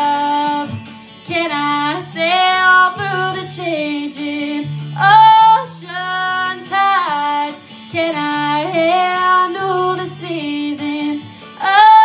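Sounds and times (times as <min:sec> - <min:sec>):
quiet instrumental accompaniment: 0:00.0 - 0:12.0
woman singing country ballad: 0:00.0 - 0:12.0.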